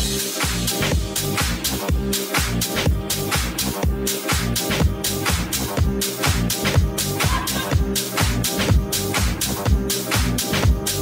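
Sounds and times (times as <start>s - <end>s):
house music mix: 0.0s - 11.0s.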